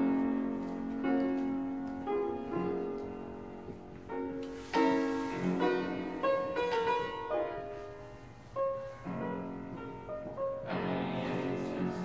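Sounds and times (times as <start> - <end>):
fortepiano playing: 0.0 - 12.0.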